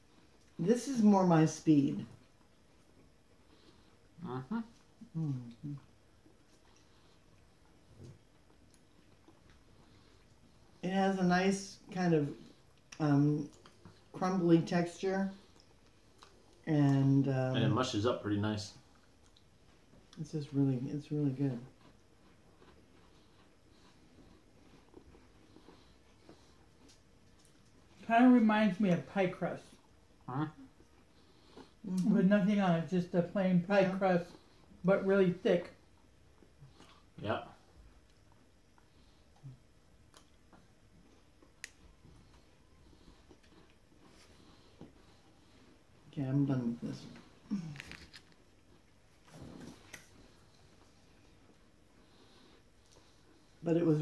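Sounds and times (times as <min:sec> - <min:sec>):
people chewing shortbread: 0:00.0 - 0:54.0.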